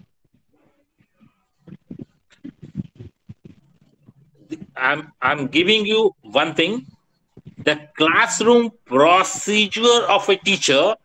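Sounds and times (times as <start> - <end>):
speech over video call: 4.4 - 11.0.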